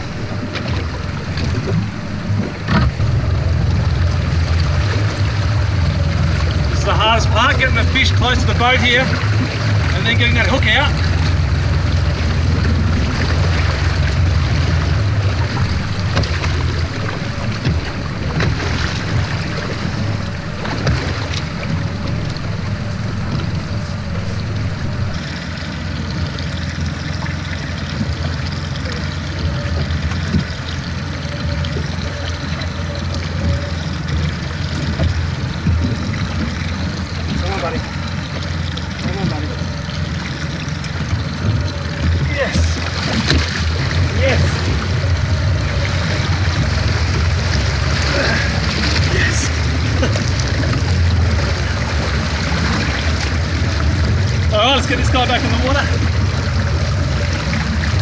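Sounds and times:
outboard engine idling: 0.0 - 58.0
water washing along hull: 0.0 - 58.0
wind buffeting microphone: 0.0 - 58.0.

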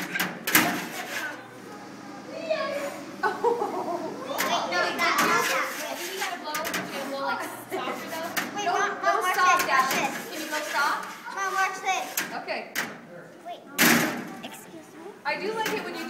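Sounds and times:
children chattering and calling out: 0.0 - 16.0.

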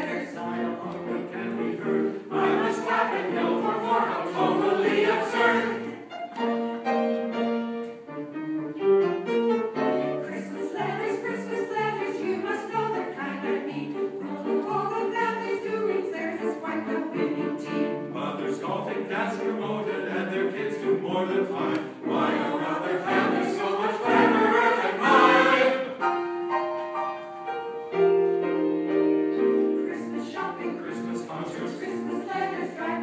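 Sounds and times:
mixed choir singing: 0.0 - 6.2, 9.9 - 26.2, 29.3 - 33.0.

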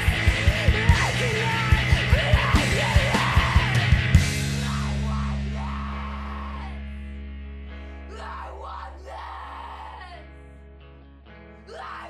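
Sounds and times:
yelled vocals: 0.0 - 7.1, 8.0 - 10.4, 11.6 - 12.0
heavy rock band: 0.0 - 10.3
distorted guitars: 0.0 - 12.0.

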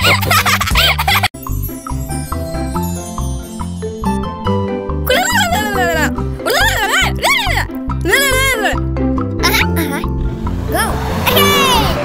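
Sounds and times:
cartoon music with bass beat: 0.0 - 12.0.

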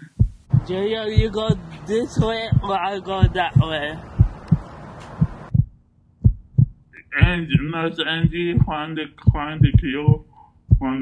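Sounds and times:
heartbeat double thumps: 0.0 - 11.0.

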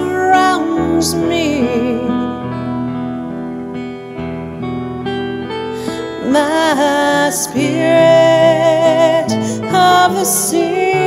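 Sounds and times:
acoustic guitar picking: 0.0 - 11.0.

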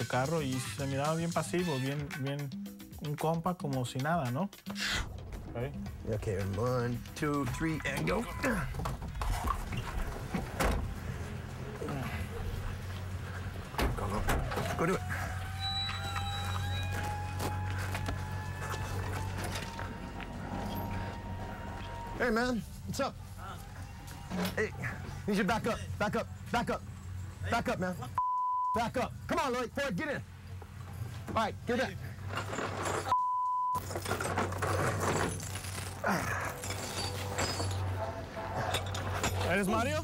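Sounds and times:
censor bleep: 28.2 - 28.8, 33.1 - 33.8.

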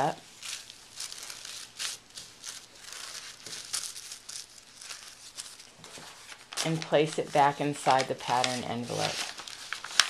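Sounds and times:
tissue paper crinkling: 0.0 - 10.0.

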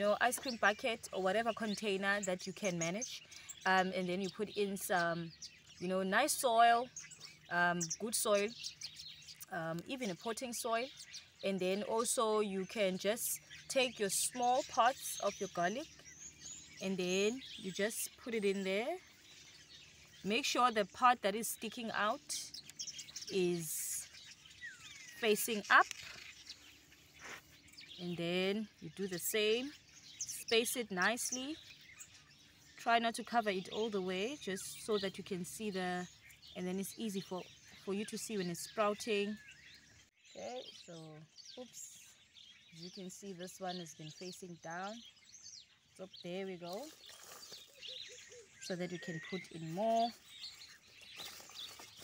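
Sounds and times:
faint bird chirps: 0.0 - 52.0
soft rustle: 25.8 - 27.7, 46.6 - 48.3, 49.7 - 52.0.

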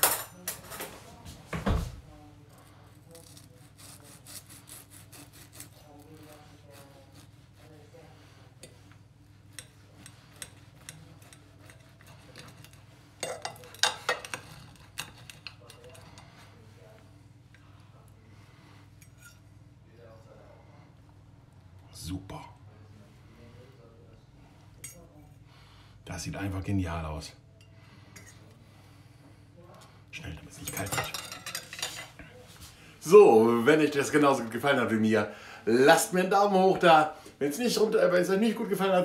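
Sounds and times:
cutlery scraping on a plate: 0.0 - 1.0, 3.1 - 16.7, 18.9 - 19.5, 27.6 - 28.5, 30.6 - 32.2
knife sawing through crisp bacon: 2.8 - 8.7, 9.5 - 12.9.

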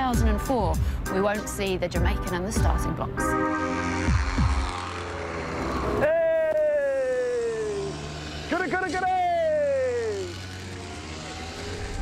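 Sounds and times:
go-kart engines passing: 1.5 - 12.0.

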